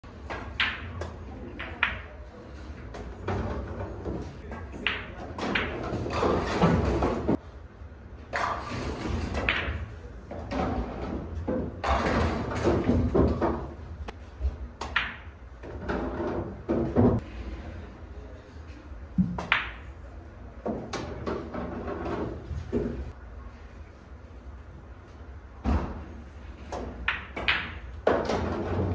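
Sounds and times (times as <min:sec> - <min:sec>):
room noise: 0:00.0 - 0:28.9
pool balls clicking: 0:00.2 - 0:02.0, 0:02.9 - 0:07.4, 0:09.2 - 0:13.9, 0:14.8 - 0:17.2, 0:19.3 - 0:19.9, 0:26.8 - 0:28.9.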